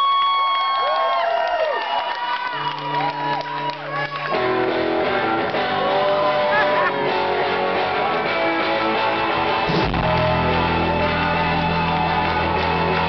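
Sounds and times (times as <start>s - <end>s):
crowd voices and whoops: 0.0s - 13.0s
guitars strumming chords: 4.3s - 13.0s.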